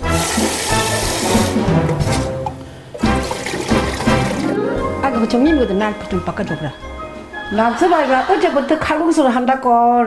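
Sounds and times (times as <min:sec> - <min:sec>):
tap water running into bowl: 0:00.0 - 0:04.6
background music: 0:00.0 - 0:10.0.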